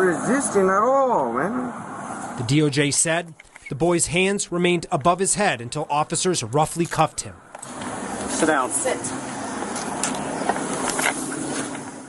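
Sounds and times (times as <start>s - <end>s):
street traffic hiss: 0.0s - 12.0s
camera and gear rustles: 3.3s - 3.8s, 9.7s - 11.9s.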